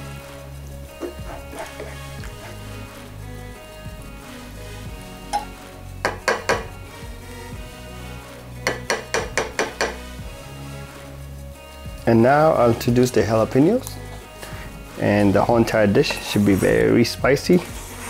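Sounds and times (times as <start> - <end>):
spatula knocking on frying pan: 5.4 - 6.7, 8.6 - 10.0.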